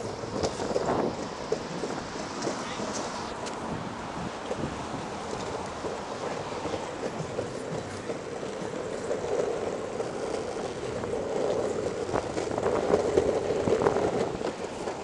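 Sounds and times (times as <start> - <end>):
longboard wheels rumbling on concrete: 0.0 - 15.0
wheels clacking over slab joints: 0.0 - 15.0.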